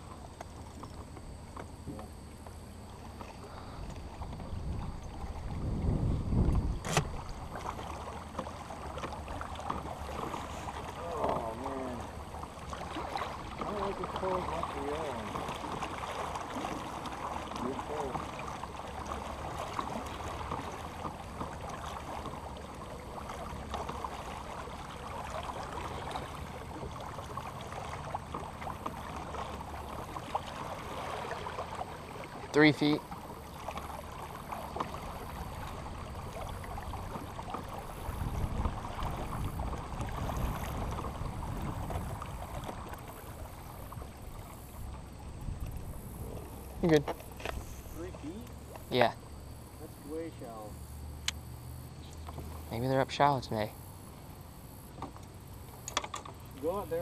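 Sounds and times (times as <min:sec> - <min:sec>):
wind and water noise: 0:00.0 - 0:57.0
wind rumble on microphone: 0:03.7 - 0:07.6, 0:35.5 - 0:46.8.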